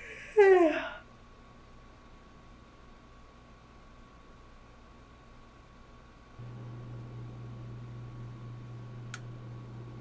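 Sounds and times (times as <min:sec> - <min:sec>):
steady low hum: 0:01.0 - 0:10.0.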